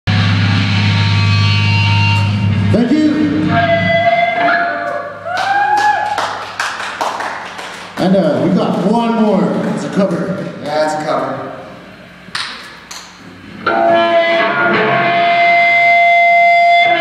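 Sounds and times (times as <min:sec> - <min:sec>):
electric guitar chord: 0:00.1 - 0:05.2, 0:13.4 - 0:17.0
people shouting and whooping: 0:03.6 - 0:06.4.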